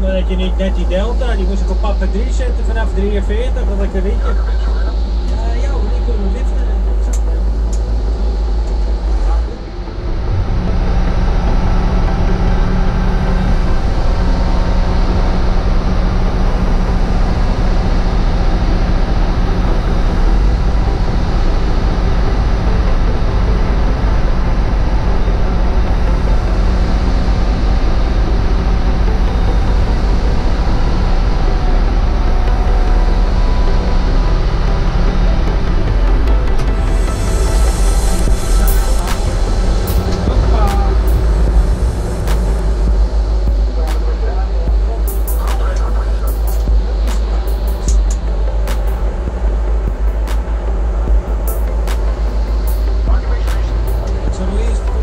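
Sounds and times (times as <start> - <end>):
tug engine rumbling under load: 0.0 - 55.0.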